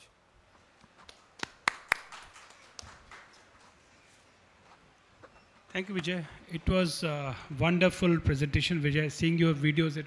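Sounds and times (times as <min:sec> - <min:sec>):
hand claps: 0:01.0 - 0:03.8.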